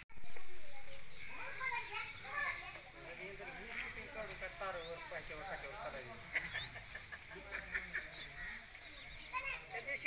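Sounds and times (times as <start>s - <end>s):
indistinct voices talking: 0.2s - 10.0s.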